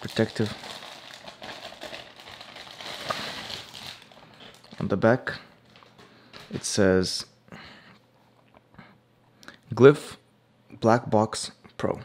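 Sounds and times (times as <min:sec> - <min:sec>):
plastic bag crinkling: 0:00.0 - 0:06.7.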